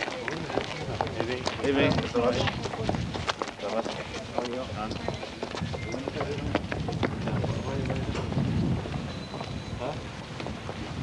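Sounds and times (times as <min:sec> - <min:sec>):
wind buffeting microphone: 0:00.3 - 0:11.0.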